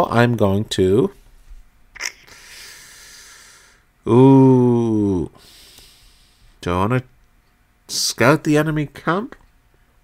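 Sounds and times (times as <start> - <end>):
man breathing in: 2.2 - 3.9, 5.4 - 6.6.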